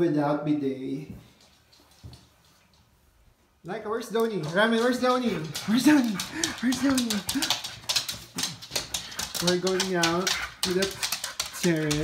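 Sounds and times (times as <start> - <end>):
light clicks and taps: 4.1 - 12.0.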